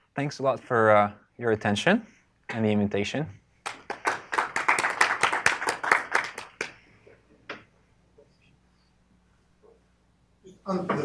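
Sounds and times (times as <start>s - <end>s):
small audience clapping: 3.6s - 6.9s.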